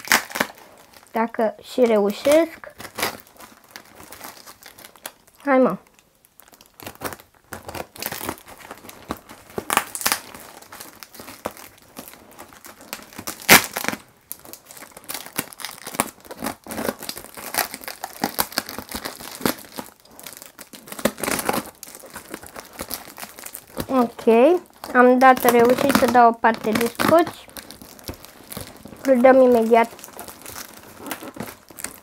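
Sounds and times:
packing tape crinkling and ripping: 0.0s - 32.0s.

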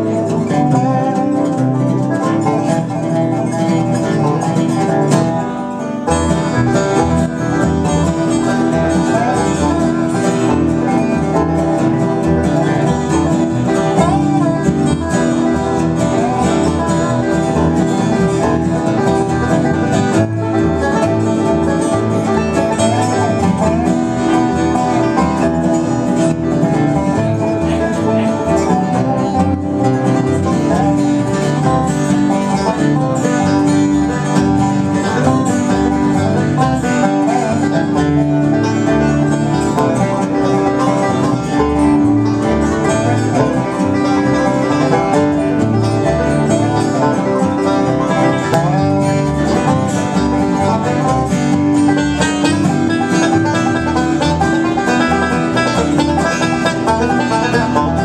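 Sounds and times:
bluegrass band playing: 0.0s - 58.0s
sliding resonator guitar notes: 0.0s - 58.0s.

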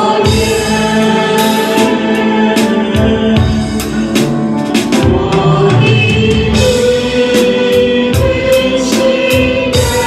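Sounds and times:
group singing worship song: 0.0s - 10.0s
piano accompaniment: 0.0s - 10.0s
steady beat: 0.0s - 10.0s.

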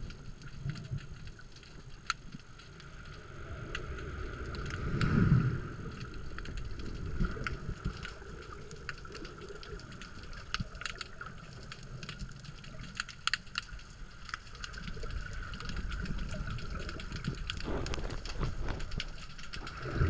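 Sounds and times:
muffled underwater water movement: 0.0s - 20.0s
wave breaking overhead: 3.2s - 7.8s.

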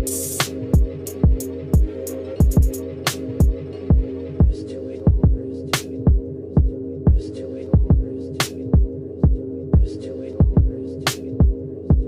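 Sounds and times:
held synth chord: 0.0s - 7.0s
hi-hats: 0.0s - 12.0s
deep bass kicks: 7.8s - 8.1s, 8.8s - 10.8s.

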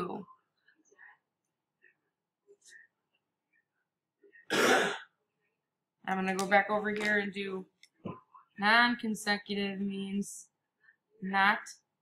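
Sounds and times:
person clearing throat: 4.5s - 5.1s.

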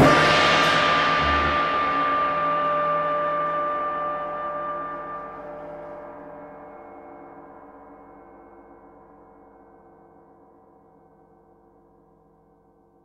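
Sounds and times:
gong ringing: 1.0s - 5.5s.

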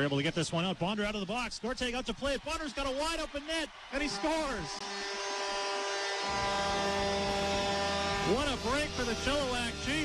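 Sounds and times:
goal horn buzzing blast: 4.0s - 10.0s.

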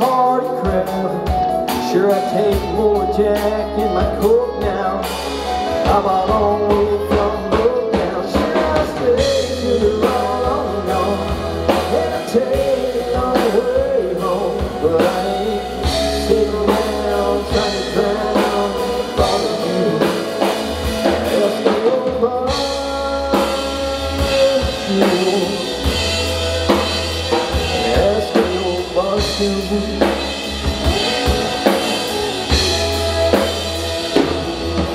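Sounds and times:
drum kit: 0.0s - 34.9s
electric bass: 0.0s - 34.9s
electric guitars: 0.0s - 34.9s.

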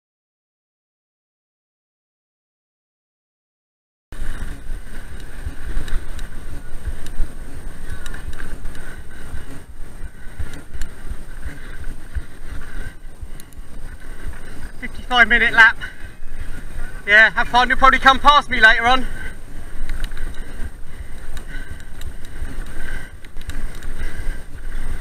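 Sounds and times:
bike rolling over bumpy grass: 4.2s - 25.0s
faint clicks and rattles: 4.2s - 25.0s
wind noise: 4.2s - 25.0s.

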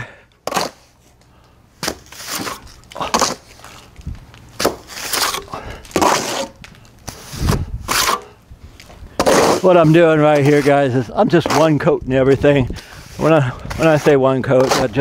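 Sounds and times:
trowel scraping and slapping mortar: 0.4s - 1.0s, 1.8s - 3.9s, 4.6s - 15.0s.

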